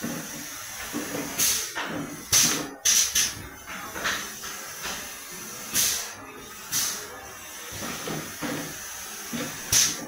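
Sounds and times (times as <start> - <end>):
compressed air hisses: 0.0 - 3.3, 4.7 - 10.0.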